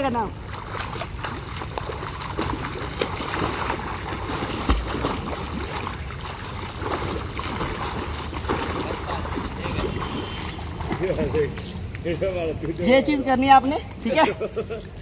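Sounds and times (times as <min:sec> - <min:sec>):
water splashing from swimming: 0:00.0 - 0:15.0.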